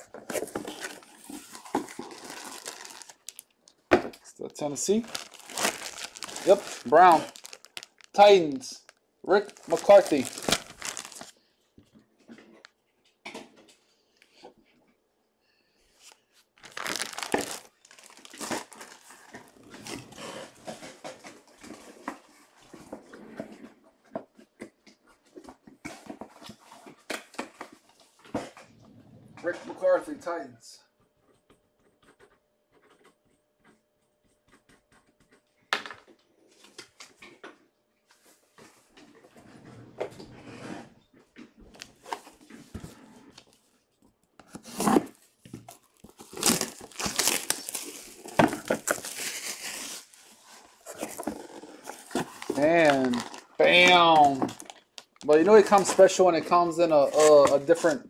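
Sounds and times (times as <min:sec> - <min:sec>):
packaging clicking and crinkling: 0:00.0 - 0:03.8, 0:04.6 - 0:11.4, 0:16.0 - 0:23.0, 0:44.2 - 0:58.0.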